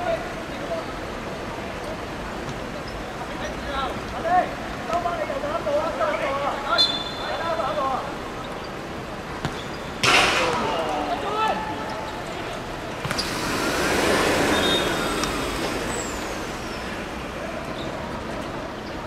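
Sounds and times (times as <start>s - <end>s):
loud hiss: 13.1s - 17.4s
vehicle passing: 13.1s - 18.8s.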